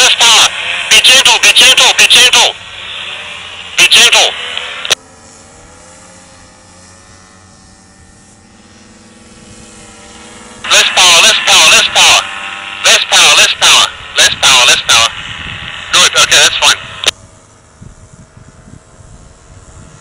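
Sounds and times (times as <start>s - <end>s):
paramotor engine drone: 0.0s - 20.0s.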